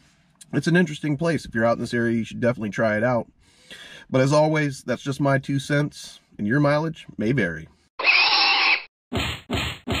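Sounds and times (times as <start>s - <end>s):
pig squealing: 8.0s - 8.9s.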